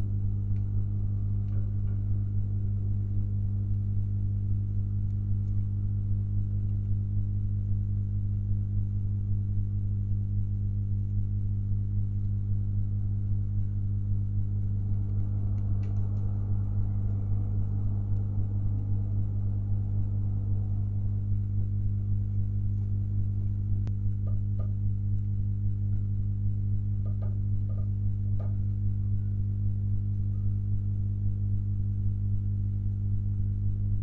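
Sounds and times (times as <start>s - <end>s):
electrical mains hum: 0.0s - 34.0s.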